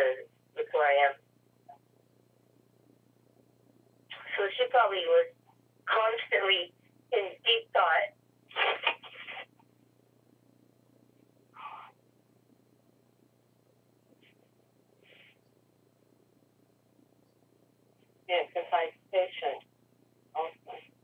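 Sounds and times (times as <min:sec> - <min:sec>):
speech over telephone line: 0:00.0 - 0:01.2, 0:04.1 - 0:09.5, 0:18.3 - 0:19.6, 0:20.4 - 0:20.8
faint steady hum: 0:00.0 - 0:21.0.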